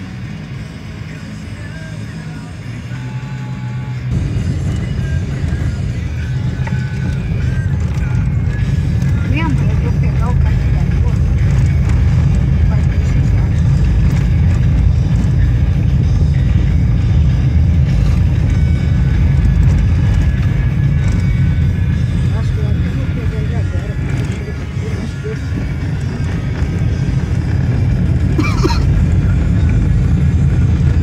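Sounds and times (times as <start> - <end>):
car driving over cobblestones: 0.0 - 31.0
music playing: 0.0 - 31.0.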